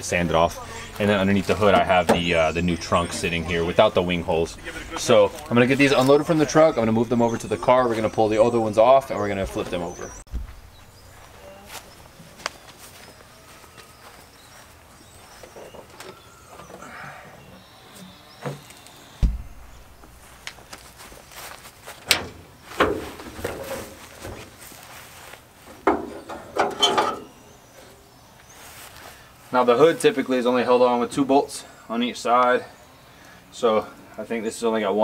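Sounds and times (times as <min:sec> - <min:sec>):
dull thump: 0:10.3 - 0:10.7, 0:19.2 - 0:20.2
car body panels clunking: 0:18.4 - 0:20.2.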